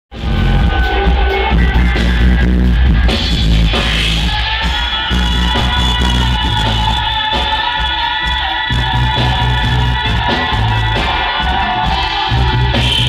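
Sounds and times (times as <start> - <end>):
bass line: 0.1 - 13.0
reggae band playing live: 0.1 - 13.0.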